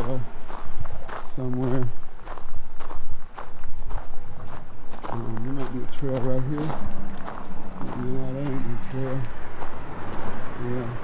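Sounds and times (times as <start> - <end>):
footsteps on gravel: 0.0 - 11.0
freeway traffic rumble: 0.0 - 11.0.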